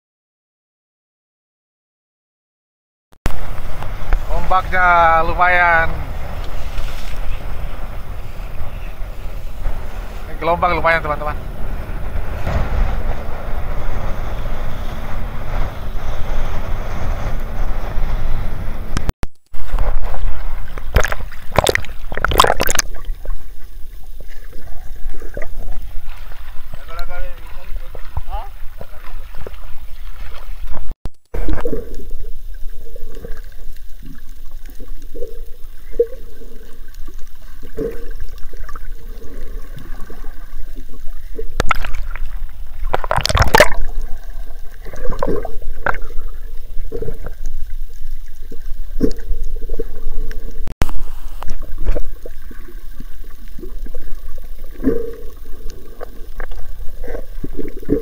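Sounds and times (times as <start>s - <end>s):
boat motor running: 3.3s - 22.5s
water gurgling: 3.3s - 58.0s
water splashing and sloshing: 3.3s - 58.0s
wind: 3.3s - 58.0s.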